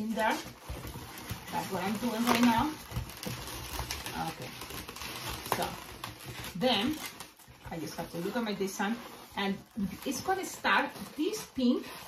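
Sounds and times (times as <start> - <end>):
balloons rubbing and ticking: 0.0 - 12.0.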